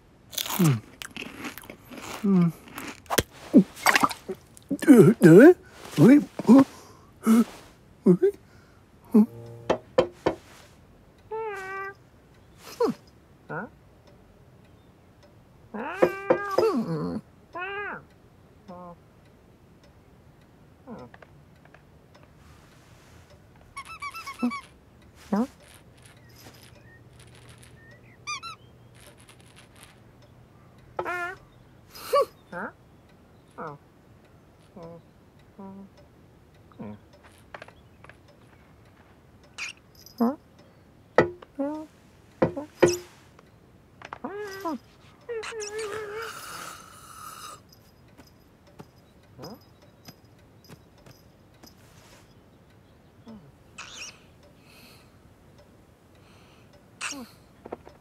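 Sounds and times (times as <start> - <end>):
crunchy snack bite: 0.3 - 4.7
chewing crunches: 0.3 - 4.8
person humming mm: 6.4 - 8.4, 9.1 - 9.9, 35.6 - 36.0, 53.3 - 53.6
faint light ticks: 10.4 - 58.0
cartoon mouse squeaking: 11.3 - 12.0, 15.8 - 18.0, 23.7 - 30.0, 31.0 - 31.5, 39.6 - 40.4, 44.2 - 47.6, 49.4 - 50.1, 53.3 - 54.2, 57.0 - 57.4.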